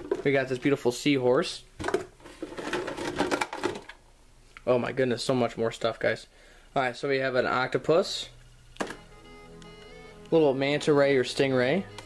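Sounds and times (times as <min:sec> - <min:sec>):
plastic toy figures clattering: 0:01.8 - 0:04.0.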